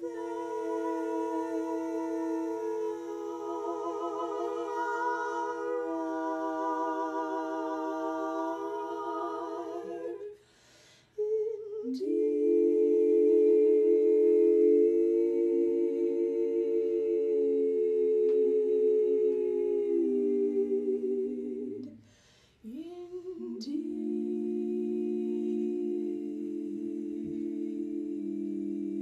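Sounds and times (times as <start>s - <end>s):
women singing in harmony: 0.0s - 29.0s.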